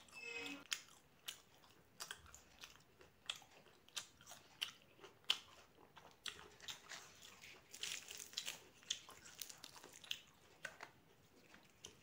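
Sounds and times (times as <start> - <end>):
chewing with wet mouth clicks: 0.7 - 12.0.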